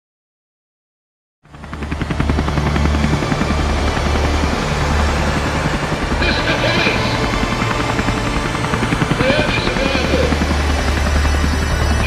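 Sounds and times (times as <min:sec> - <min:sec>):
helicopter rotor chop: 0:01.5 - 0:12.0.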